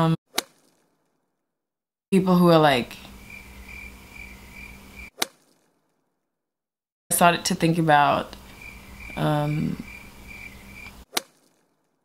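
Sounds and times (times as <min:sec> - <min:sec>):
cricket chirping: 0:03.1 - 0:05.1, 0:08.4 - 0:11.0.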